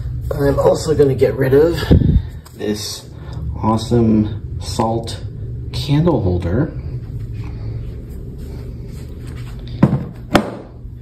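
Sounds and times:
low rumble of handling noise: 0:00.0 - 0:11.0
sharp knocks: 0:09.8 - 0:10.8.

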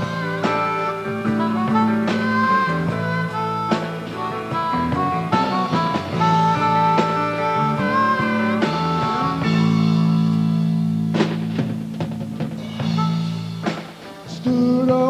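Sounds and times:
band with guitar: 0:00.0 - 0:15.0
blues harmonica: 0:00.0 - 0:15.0.

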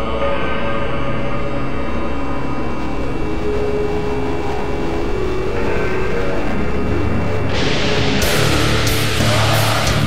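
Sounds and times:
industrial noise drone: 0:00.0 - 0:10.0.

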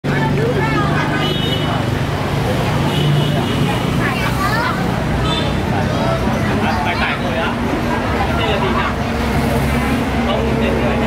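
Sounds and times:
people talking at once: 0:00.0 - 0:11.0
traffic noise: 0:00.0 - 0:11.0.

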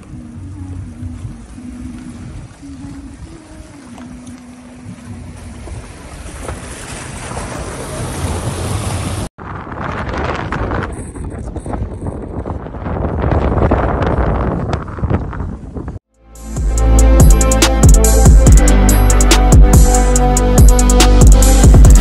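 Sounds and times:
water splashing under tyres: 0:00.0 - 0:09.3
wind: 0:00.0 - 0:22.0
road noise on dirt track: 0:05.2 - 0:16.0.

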